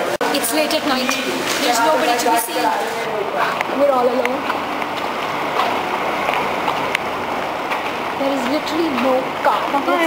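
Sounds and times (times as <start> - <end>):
faint footsteps: 1.0 - 10.0.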